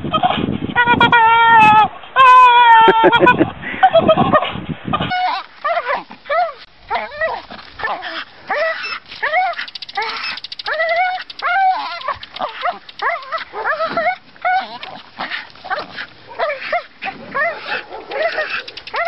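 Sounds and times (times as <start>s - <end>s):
dog whining and yipping: 5.0s - 19.0s.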